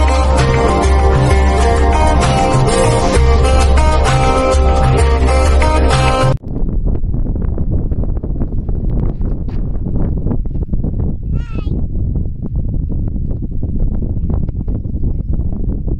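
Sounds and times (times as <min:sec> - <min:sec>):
wind buffeting microphone: 0:00.0 - 0:15.9.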